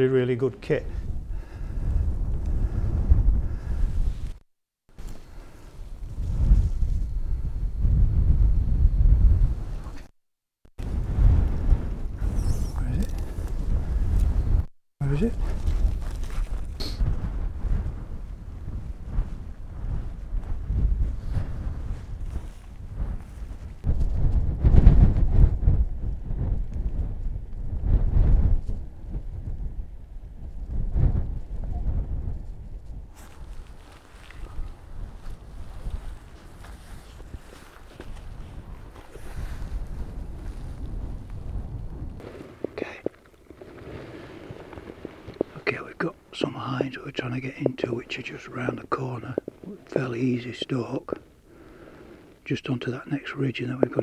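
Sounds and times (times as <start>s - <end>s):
wind rumbling on microphone: 0.0s - 4.4s, 5.0s - 10.1s, 10.8s - 54.0s
rustling through heather: 33.1s - 41.6s, 42.2s - 52.5s.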